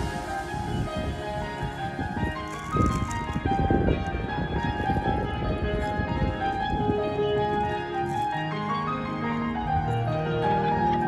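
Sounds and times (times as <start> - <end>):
electronic keyboard melody: 0.0 - 11.0.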